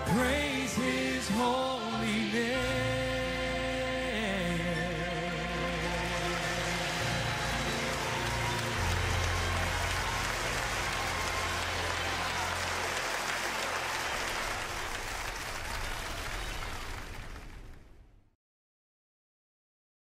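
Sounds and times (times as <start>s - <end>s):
choir singing: 0.0s - 12.5s
congregation applauding: 4.2s - 18.0s.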